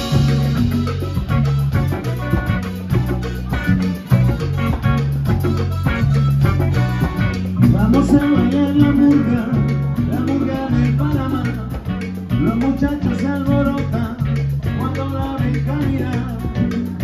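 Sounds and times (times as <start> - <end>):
latin dance band playing: 0.0 - 17.0.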